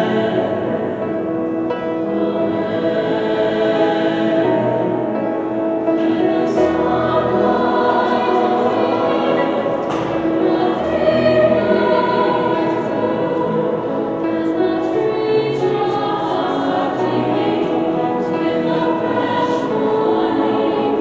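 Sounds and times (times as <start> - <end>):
choir singing held chords: 0.0 - 21.0.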